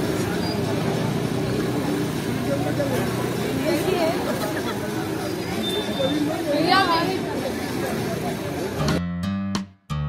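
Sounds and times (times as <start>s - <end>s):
crowd chatter: 0.0s - 9.0s
traffic noise: 0.0s - 9.0s.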